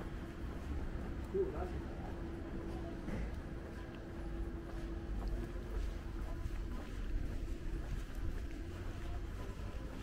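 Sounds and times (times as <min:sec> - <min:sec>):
faint street ambience: 0:00.0 - 0:10.0.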